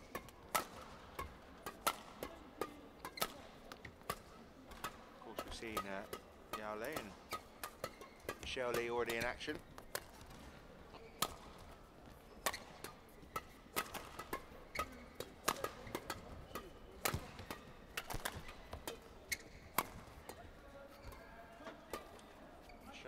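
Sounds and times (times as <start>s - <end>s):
badminton rackets striking shuttlecock: 0.0s - 22.4s.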